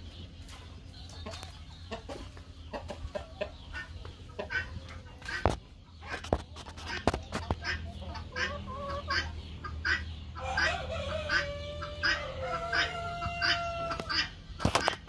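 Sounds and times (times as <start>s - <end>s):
chickens clucking: 0.0s - 15.0s.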